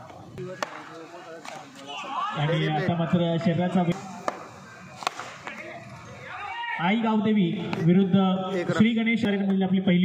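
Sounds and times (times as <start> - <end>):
bat striking ball: 4.2 - 5.6.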